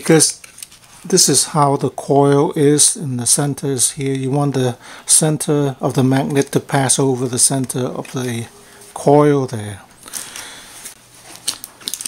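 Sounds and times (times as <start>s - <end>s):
plastic discs rustling: 10.0s - 12.0s.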